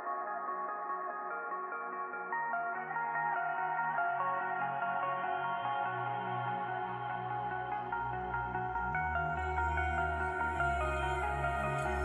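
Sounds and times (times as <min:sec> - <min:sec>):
muffled synthesizer chords: 0:05.1 - 0:12.0.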